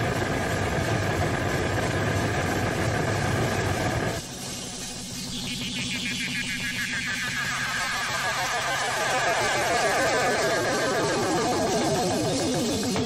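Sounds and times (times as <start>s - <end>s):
low synthesizer drone: 0.0s - 13.0s
warbling synthesizer tone sweeping down: 4.4s - 13.0s.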